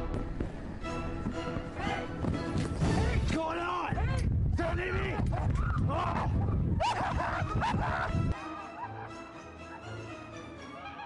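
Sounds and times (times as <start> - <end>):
people screaming in fright: 5.5 - 9.0.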